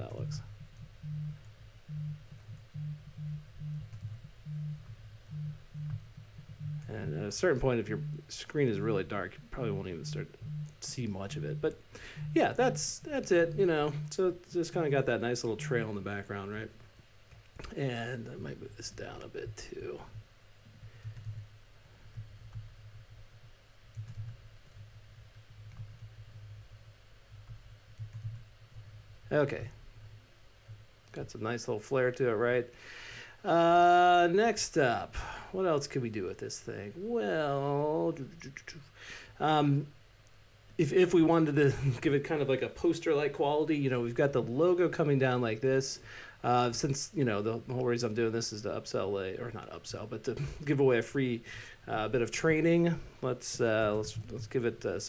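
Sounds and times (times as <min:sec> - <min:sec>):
pulsing electrical hum: 0:00.0 - 0:55.0.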